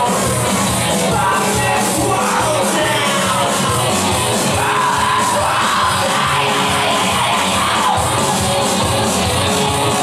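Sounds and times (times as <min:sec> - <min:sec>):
industrial rock band playing: 0:00.0 - 0:10.0
singer yelling into microphone: 0:01.1 - 0:03.9, 0:04.5 - 0:08.1.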